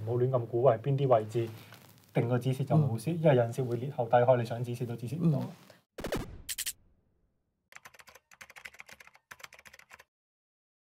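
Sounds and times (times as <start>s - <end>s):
keyboard key clicks: 7.8s - 10.0s.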